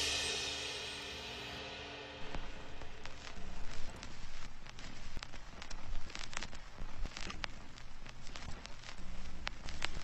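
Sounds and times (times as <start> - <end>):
crackling noise with clicks: 2.2 - 10.0.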